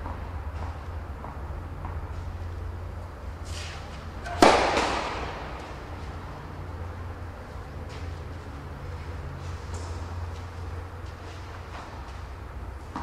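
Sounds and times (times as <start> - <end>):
tennis ball bouncing: 0.0 - 2.3, 4.2 - 5.9, 9.7 - 13.0
racket striking tennis ball: 3.4 - 5.9.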